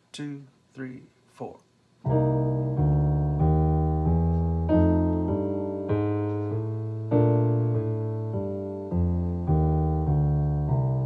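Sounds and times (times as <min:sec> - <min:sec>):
piano chord voicings: 0:02.0 - 0:11.0
walking bass line on piano: 0:02.1 - 0:11.0.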